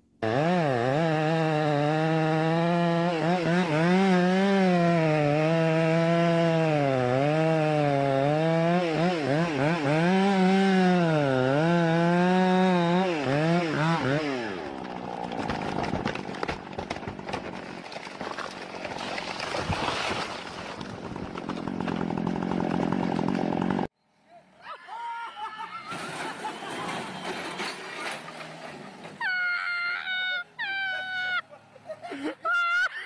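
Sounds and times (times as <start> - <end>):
chainsaw cutting wood: 0.0 - 23.9.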